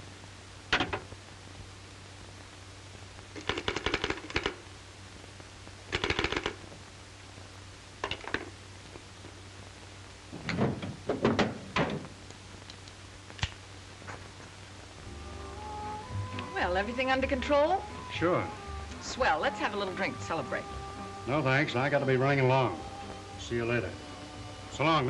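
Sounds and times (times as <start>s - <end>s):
steady low hum: 0.0s - 25.0s
pistol clicking and rattling: 3.4s - 4.6s, 5.9s - 6.6s.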